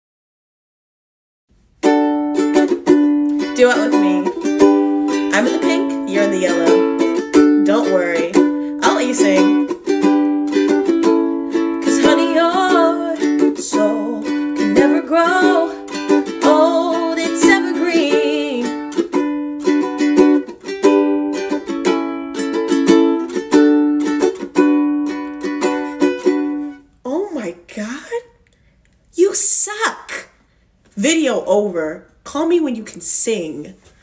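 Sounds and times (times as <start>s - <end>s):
ukulele strumming: 1.6s - 26.8s
woman singing: 3.4s - 9.9s, 11.8s - 19.1s.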